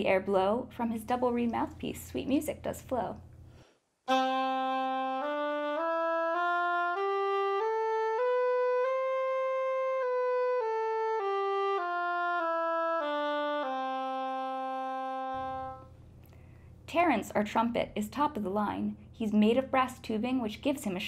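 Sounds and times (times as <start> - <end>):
oboe playing a scale: 4.1 - 16.0.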